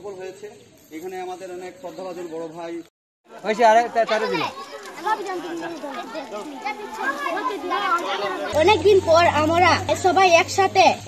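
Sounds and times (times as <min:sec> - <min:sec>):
children talking and calling out: 0:03.3 - 0:11.0.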